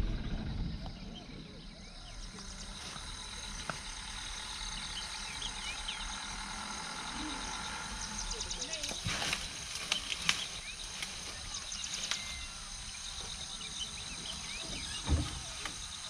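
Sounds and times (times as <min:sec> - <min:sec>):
faint bird chirps: 0:00.0 - 0:16.0
high insect drone: 0:00.0 - 0:16.0
faint distant voices: 0:00.4 - 0:16.0.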